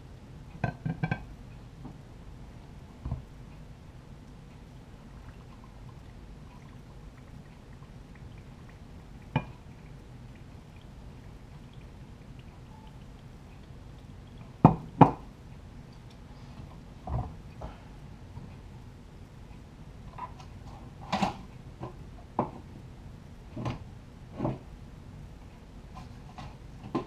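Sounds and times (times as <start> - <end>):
liquid trickling into jar: 4.7 - 15.0.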